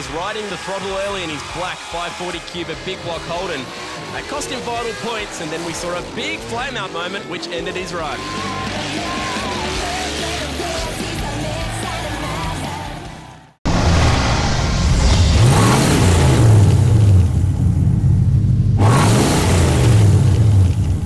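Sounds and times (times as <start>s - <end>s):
car engine revving: 0.0s - 13.0s, 13.7s - 21.0s
background music: 0.0s - 13.5s
crowd yelling: 0.0s - 13.6s.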